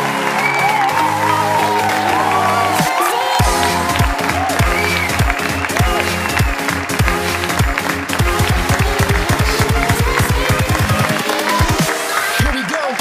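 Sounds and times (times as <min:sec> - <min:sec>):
heavy kick drum: 0:03.4 - 0:12.6.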